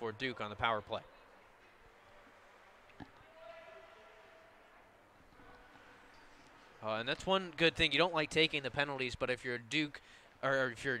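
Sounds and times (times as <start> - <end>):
distant voice in a hall: 0.0 - 6.9
ice rink ambience: 0.0 - 11.0.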